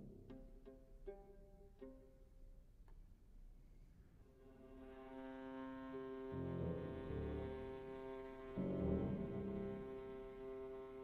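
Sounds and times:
viola pizzicato notes: 0.0s - 2.5s, 4.6s - 11.0s.

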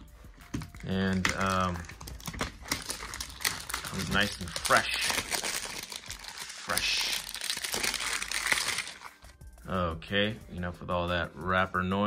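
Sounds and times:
plastic wrap crinkling: 0.6s - 9.4s.

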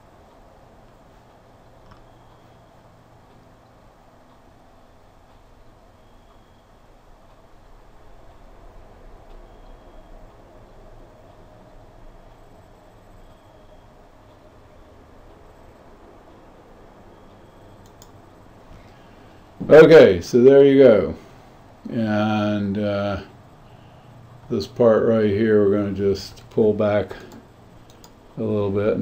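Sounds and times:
low hum: 0.0s - 29.0s.

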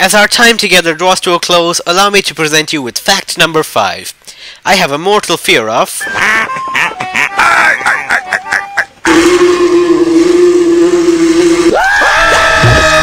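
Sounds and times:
chattering cartoon duck voice: 6.2s - 9.0s
cartoon voice yelling: 7.3s - 8.8s.

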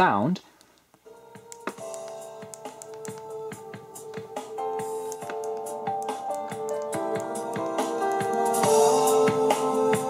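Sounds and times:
synth music with steady beat: 1.1s - 10.0s.

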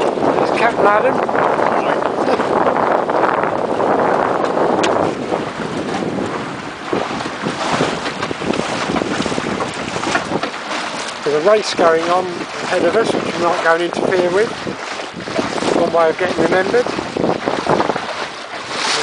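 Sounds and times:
water rushing along hull: 0.0s - 19.0s
wind buffeting microphone: 0.0s - 19.0s
short splashes or knocks: 3.5s - 19.0s.

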